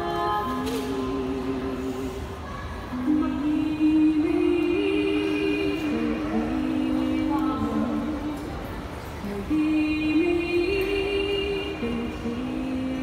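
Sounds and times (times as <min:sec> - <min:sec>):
women singing in harmony: 0:00.0 - 0:08.6, 0:09.2 - 0:13.0.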